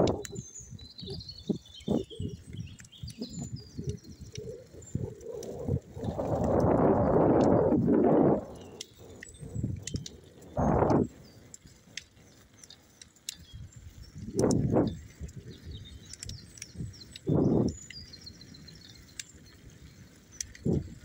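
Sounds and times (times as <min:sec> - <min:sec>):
wind noise on microphone: 0:00.0 - 0:12.3, 0:13.4 - 0:21.0
birds chirping: 0:00.0 - 0:21.0.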